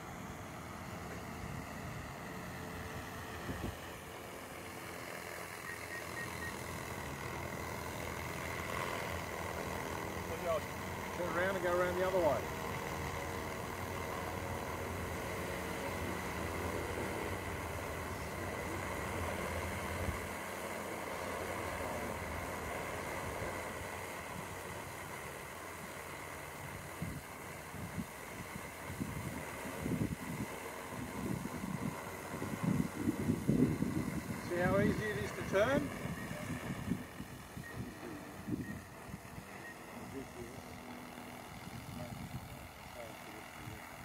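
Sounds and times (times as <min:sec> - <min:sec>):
drone propellers whirring: 0:00.0 - 0:44.0.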